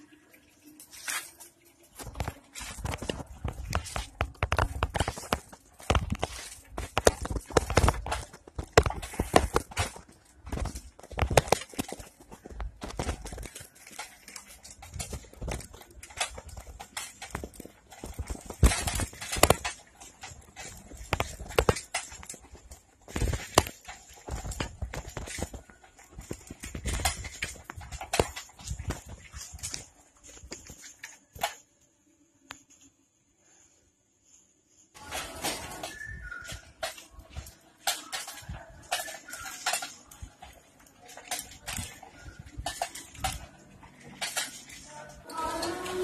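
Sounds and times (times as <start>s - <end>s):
bicycle basket rattling: 0.0s - 31.6s, 35.0s - 46.0s.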